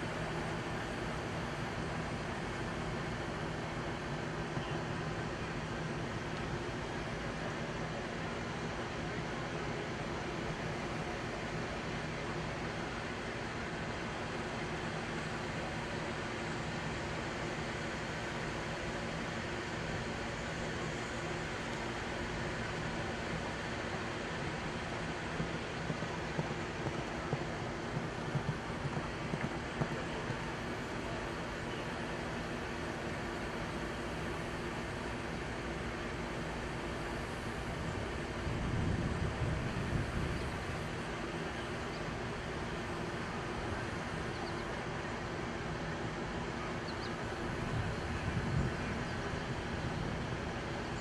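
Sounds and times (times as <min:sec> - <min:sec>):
outdoor background noise: 0:00.0 - 0:51.0
wind on microphone: 0:37.7 - 0:41.0, 0:47.5 - 0:50.8.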